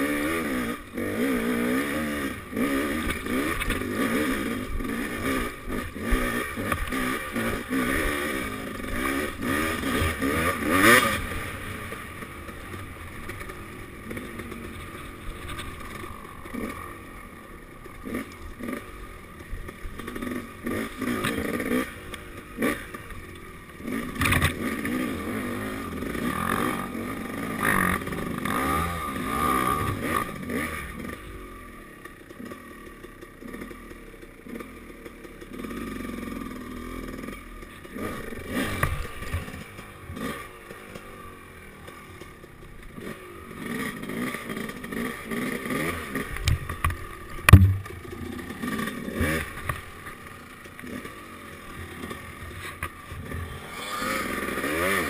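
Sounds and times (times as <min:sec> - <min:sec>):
dirt bike engine revving: 0:00.0 - 0:55.0
knocks and clatter of bike: 0:01.8 - 0:17.0, 0:17.7 - 0:55.0.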